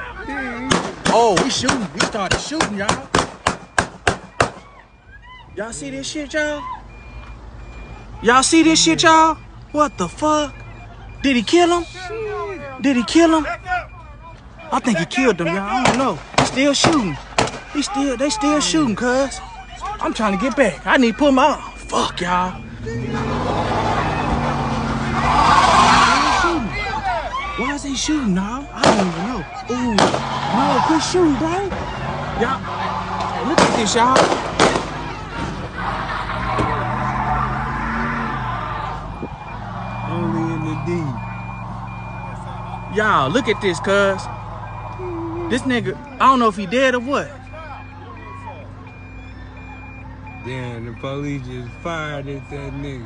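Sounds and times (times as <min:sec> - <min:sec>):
high electronic warning beeps: 0:04.9 - 0:23.4, 0:27.6 - 0:31.6, 0:39.1 - 0:53.0
faint voices: 0:17.1 - 0:52.8.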